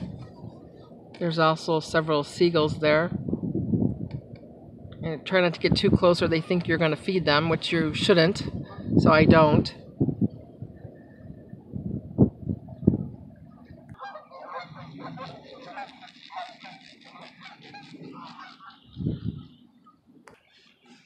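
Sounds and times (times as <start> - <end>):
low rumbles: 0.0 - 20.6
geese honking: 13.5 - 21.0.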